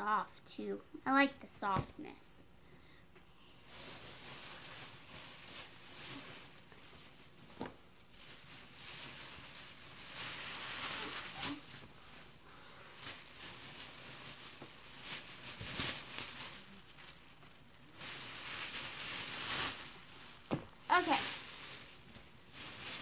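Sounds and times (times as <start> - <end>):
plastic bag crinkling: 3.6 - 23.0.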